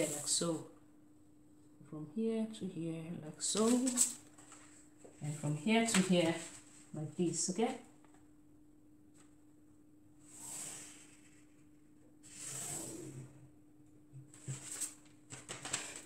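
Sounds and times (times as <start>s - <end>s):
soft paper swishes: 14.4s - 16.0s.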